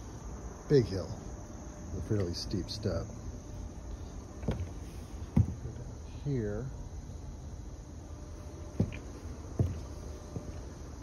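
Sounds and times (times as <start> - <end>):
footsteps on wooden steps: 4.0 - 5.9, 8.1 - 11.0.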